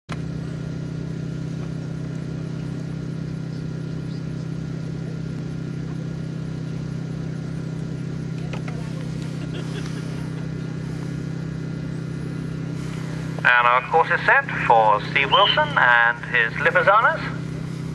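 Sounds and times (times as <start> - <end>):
low pulsing mechanical hum: 0.1 - 17.9.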